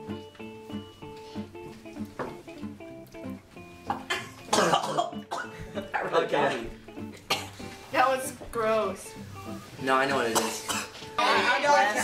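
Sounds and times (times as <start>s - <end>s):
guitar music: 0.0s - 12.0s
person coughing harshly: 4.1s - 5.6s, 7.3s - 7.6s, 10.3s - 11.0s.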